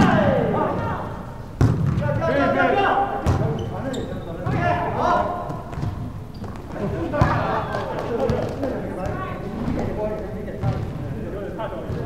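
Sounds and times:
people calling out: 0.0s - 1.4s
volleyball smack: 1.6s - 2.0s.

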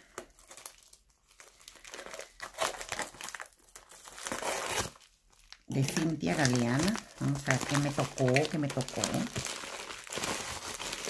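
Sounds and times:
foil mailer crinkling: 0.0s - 11.0s.

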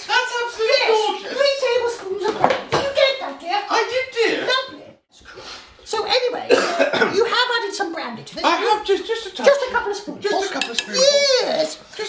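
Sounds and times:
person coughing: 6.5s - 7.2s.

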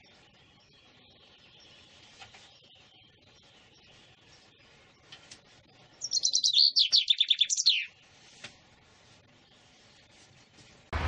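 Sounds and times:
chaffinch singing: 0.0s - 8.3s.

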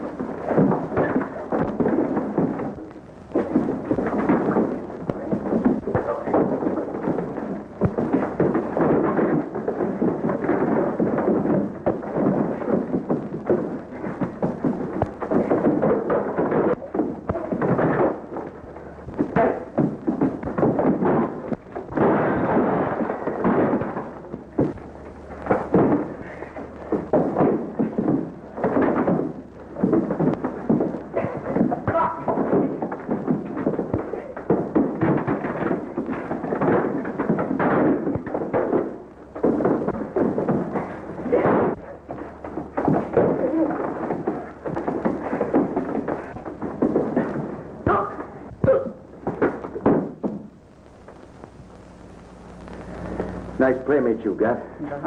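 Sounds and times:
crashes of bodies and furniture: 0.0s - 51.6s
body thuds: 0.0s - 53.7s
punches: 0.0s - 53.7s.

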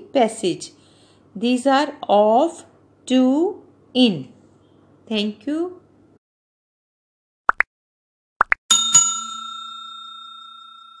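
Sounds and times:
bell chime ringing: 8.7s - 11.0s.

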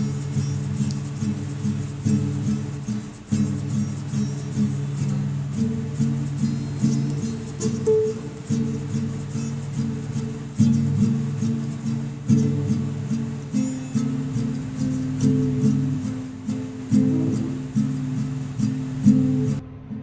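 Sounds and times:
acoustic guitar picking: 0.0s - 19.6s.

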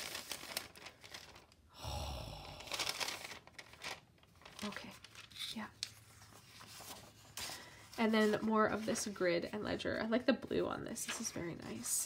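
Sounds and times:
paper sheet crinkling: 0.0s - 1.7s, 2.6s - 9.5s.

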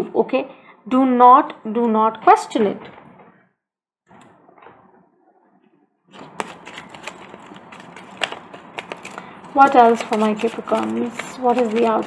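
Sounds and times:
cards rustling: 6.2s - 12.0s
cards shuffled with clicks and slaps: 6.2s - 12.0s.

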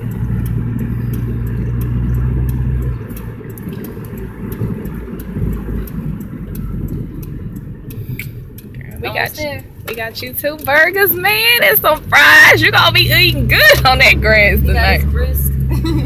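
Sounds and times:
car engine drone: 0.0s - 16.0s
road noise: 0.0s - 16.0s.

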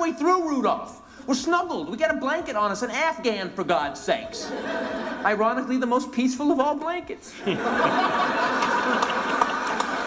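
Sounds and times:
crowd laughing: 4.3s - 5.7s, 6.4s - 10.0s
scattered clapping: 8.5s - 10.0s.

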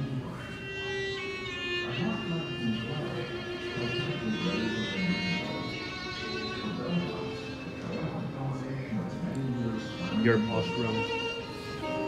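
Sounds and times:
low indistinct voices: 0.0s - 12.0s
violin-led string music: 0.0s - 12.0s.

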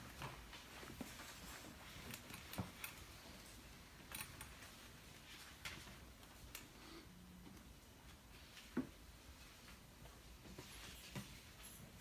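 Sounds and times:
faint clicks and rustles: 0.0s - 12.0s.

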